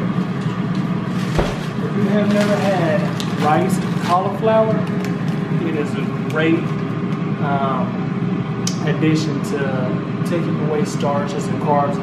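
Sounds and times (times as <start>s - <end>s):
steady low hum: 0.0s - 12.0s
refrigerator door shutting: 1.2s - 1.8s.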